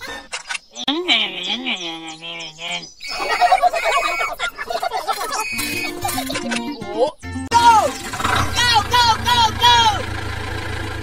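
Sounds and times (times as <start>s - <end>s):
cartoonish chattering sounds: 0.0s - 7.0s
cartoonish wavering call: 2.7s - 4.5s, 5.1s - 6.3s.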